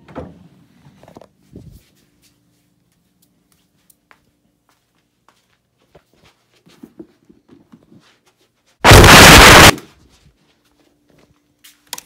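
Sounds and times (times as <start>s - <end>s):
loud distorted noise burst: 8.8s - 9.8s.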